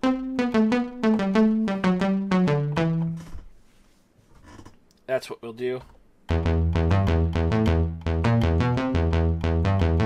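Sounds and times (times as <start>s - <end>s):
low synthesizer note: 6.3s - 10.0s.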